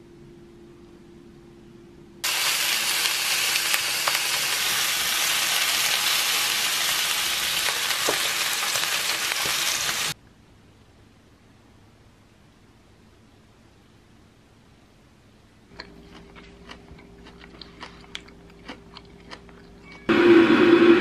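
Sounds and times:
meat sizzling in a frying pan: 0:02.2 - 0:10.2.

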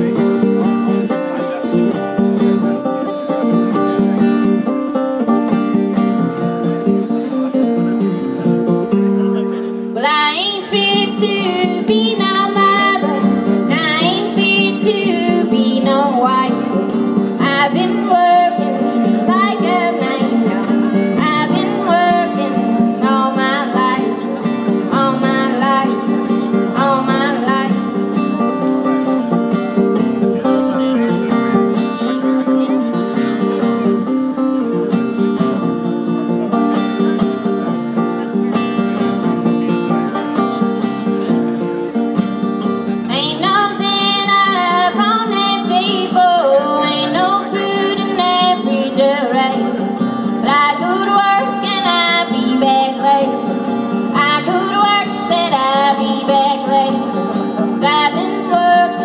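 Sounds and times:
acoustic guitar: 0:00.0 - 0:59.0
woman singing blues: 0:10.0 - 0:29.0, 0:43.0 - 0:59.0.

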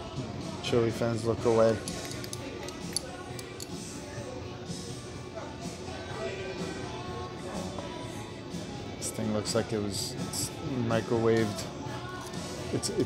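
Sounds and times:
background music: 0:00.0 - 0:13.0
murmur of voices: 0:00.0 - 0:13.0.

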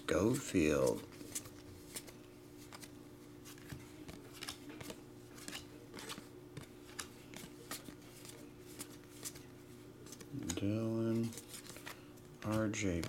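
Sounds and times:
low steady hum: 0:00.0 - 0:13.0
cards flicking against cards: 0:00.8 - 0:09.4.

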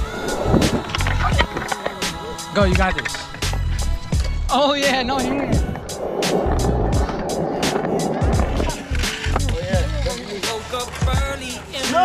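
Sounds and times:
background music with beat: 0:00.0 - 0:12.0
skateboard wheels on concrete: 0:00.0 - 0:12.0.

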